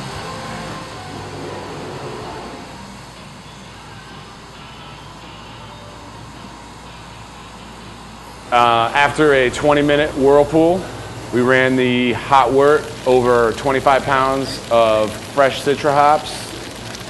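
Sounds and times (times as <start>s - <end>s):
faint music: 0.0s - 17.0s
machinery hum and hiss: 0.0s - 17.0s.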